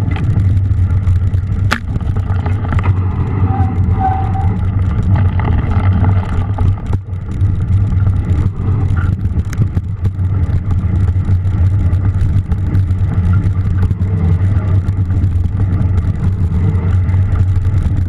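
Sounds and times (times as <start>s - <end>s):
bike tyres on muddy trail: 0.0s - 18.0s
small clicks and clatters: 0.0s - 18.0s
wind on microphone: 0.0s - 18.0s.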